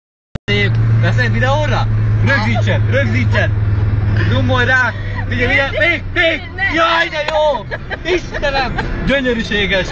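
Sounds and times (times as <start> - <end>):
car driving drone from cabin: 0.5 - 9.9
voices talking: 0.5 - 9.9.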